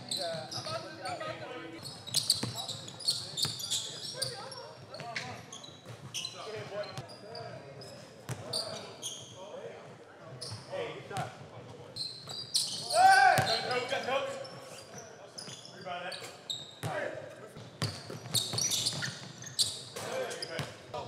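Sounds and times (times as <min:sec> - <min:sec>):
sneakers squeaking: 0:00.0 - 0:09.5, 0:10.3 - 0:10.7, 0:11.7 - 0:21.0
players shouting: 0:12.8 - 0:13.8.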